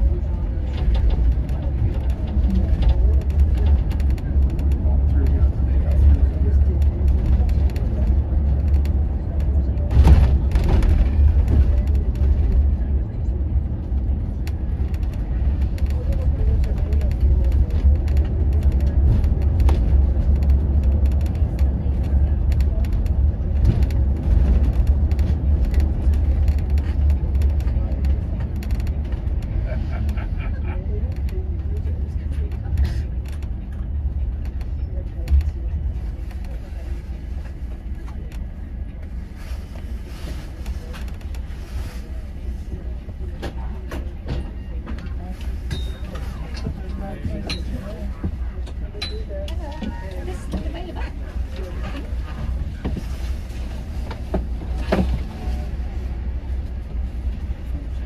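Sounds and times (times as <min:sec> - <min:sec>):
interior rattles and creaks: 0:00.0 - 0:58.0
low engine and road drone: 0:00.0 - 0:58.0.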